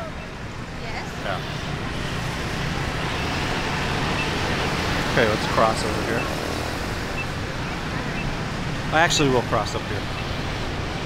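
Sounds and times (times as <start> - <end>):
city traffic noise: 0.0 - 11.0
motorbikes running: 0.0 - 11.0.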